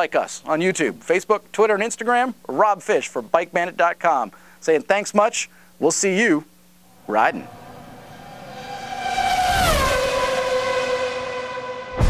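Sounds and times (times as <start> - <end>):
steady tone with rushing hiss: 0.0 - 10.4.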